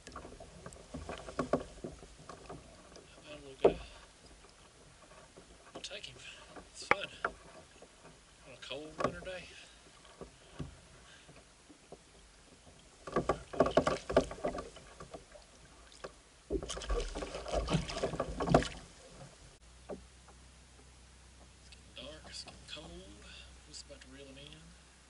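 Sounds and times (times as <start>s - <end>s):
large fish splashing in water: 16.5s - 18.9s.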